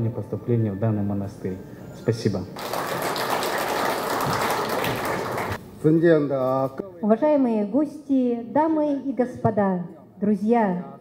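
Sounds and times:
audience applauding: 2.6s - 5.6s.

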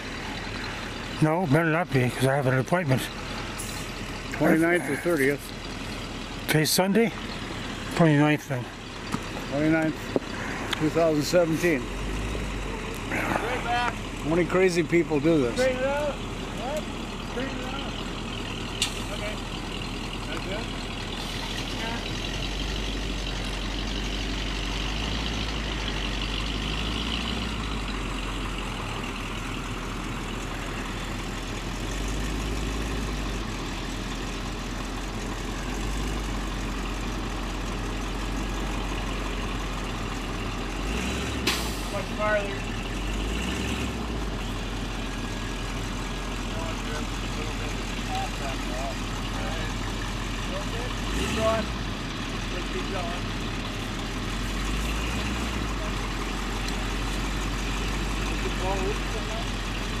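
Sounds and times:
truck engine idling: 0.0s - 60.0s.

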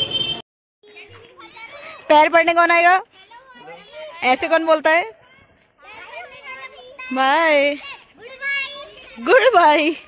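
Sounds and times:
children chattering: 0.8s - 10.0s.

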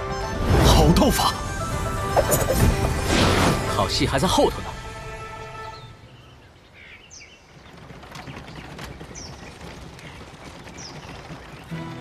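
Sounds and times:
music: 0.0s - 6.0s, 11.7s - 12.0s.

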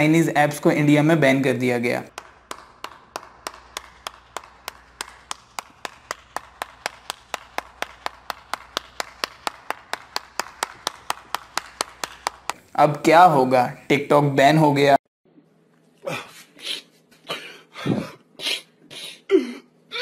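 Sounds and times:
person clapping slowly: 2.1s - 12.6s.

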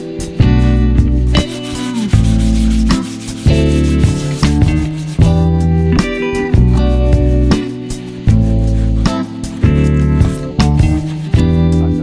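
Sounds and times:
strummed guitar music: 0.0s - 12.0s
sanding block rubbing plywood: 1.3s - 5.6s.

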